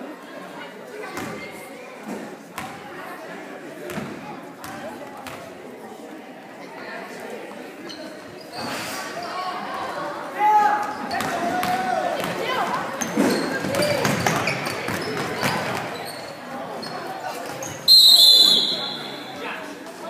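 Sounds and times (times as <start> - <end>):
spectators shouting and cheering: 10.3 - 12.9
basketball bouncing on court: 13.0 - 16.0
referee's whistle: 17.9 - 19.3.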